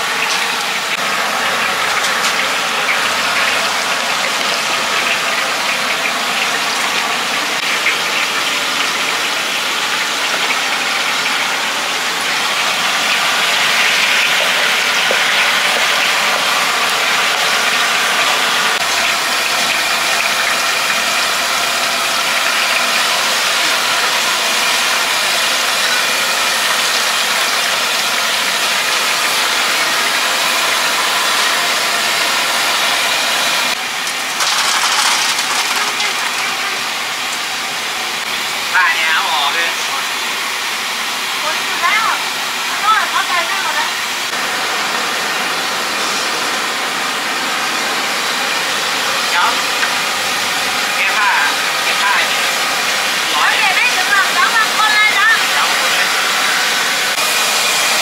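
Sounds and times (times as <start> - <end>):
chicken deep-frying in oil: 0.0 - 58.0.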